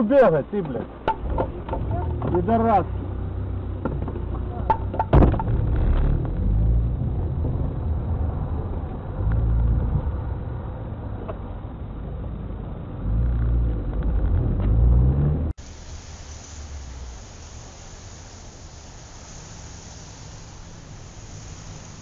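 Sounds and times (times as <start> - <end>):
car engine speeding up: 4.4 - 11.2, 12.2 - 15.6
hiss: 15.6 - 22.0.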